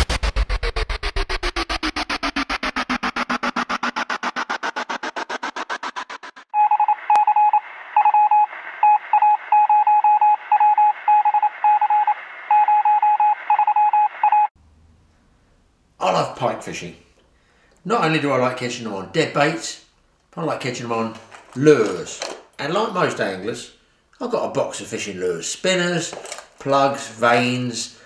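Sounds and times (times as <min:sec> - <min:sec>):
pulsing electronic falling tone: 0:00.0 - 0:09.0
morse code beeping: 0:06.5 - 0:14.5.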